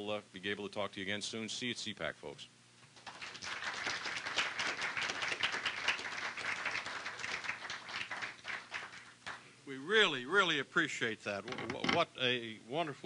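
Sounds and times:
audience applauding: 3.0s - 9.4s.

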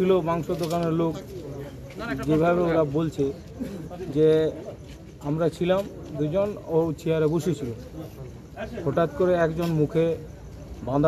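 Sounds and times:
man speaking: 2.2s - 11.0s.

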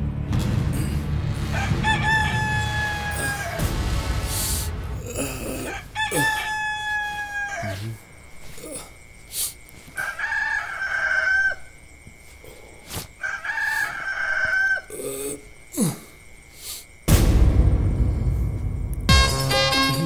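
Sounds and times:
rooster crowing: 1.4s - 3.8s, 5.1s - 8.3s, 9.9s - 12.1s, 13.2s - 15.0s.

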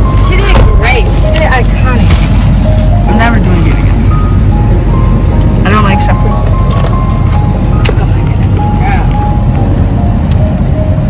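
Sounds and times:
road noise in car cabin: 0.0s - 11.0s.

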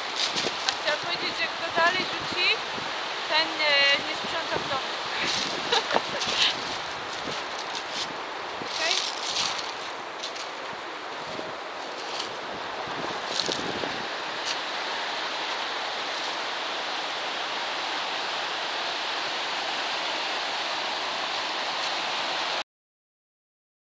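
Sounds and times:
wind buffeting microphone: 0.0s - 17.5s
waves breaking on shingle beach: 0.0s - 22.6s.

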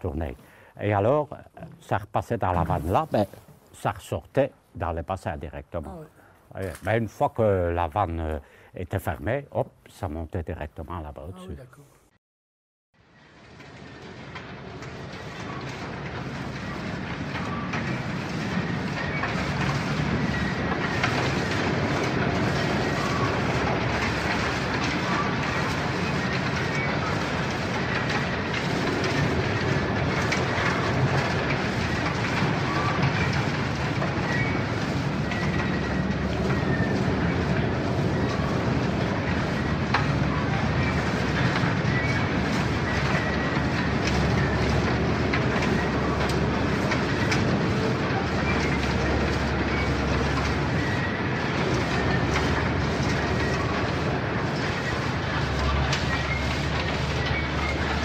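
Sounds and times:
heavy machinery rumble: 13.0s - 58.0s.

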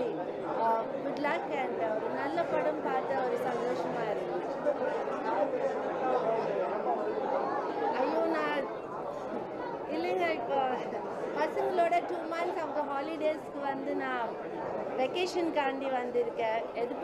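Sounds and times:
overlapping chatter of voices: 0.0s - 17.0s.

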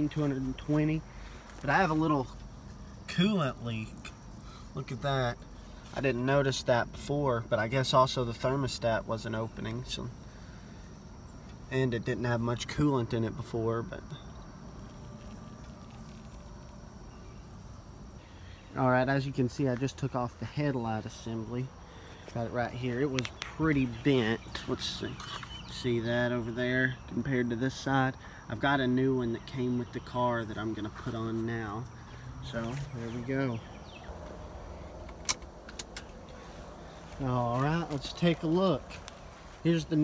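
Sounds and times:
insects trilling: 0.0s - 40.0s
sharp clicks: 35.0s - 36.2s.

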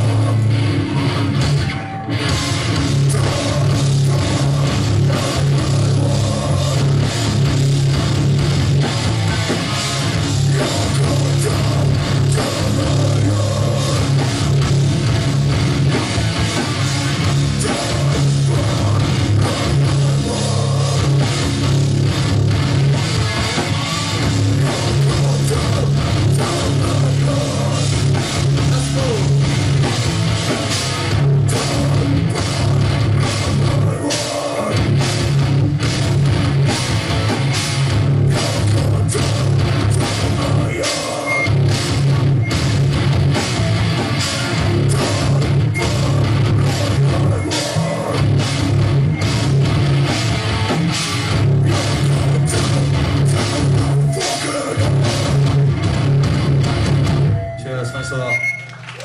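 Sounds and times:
punk band playing live: 0.0s - 59.0s.

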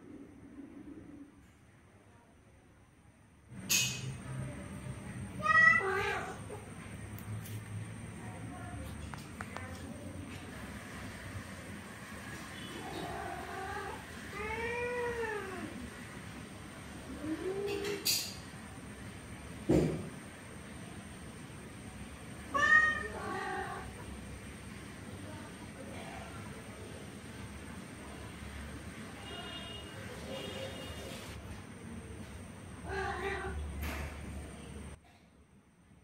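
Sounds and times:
cat meowing: 5.4s - 6.6s, 22.5s - 24.0s, 32.8s - 33.6s
cat meowing cry: 5.4s - 6.6s, 12.8s - 15.8s, 22.5s - 24.0s.

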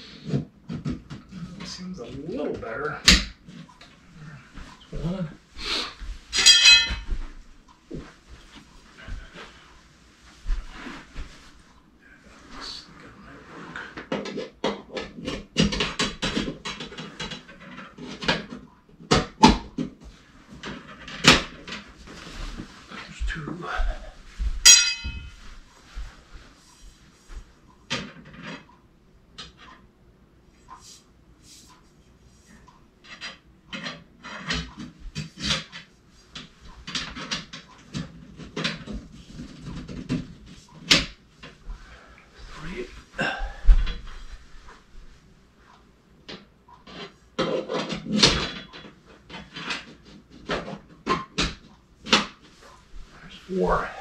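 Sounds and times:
metal tubes clicking and rattling: 6.3s - 7.1s, 24.6s - 25.4s
brief metallic ringing tone: 24.6s - 25.3s.

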